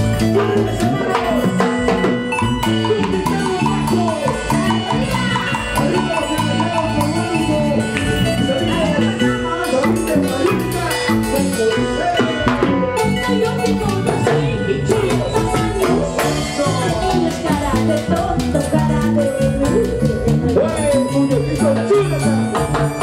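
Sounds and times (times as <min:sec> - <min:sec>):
drums beating: 0:00.0 - 0:23.0
electric bass: 0:00.0 - 0:23.0.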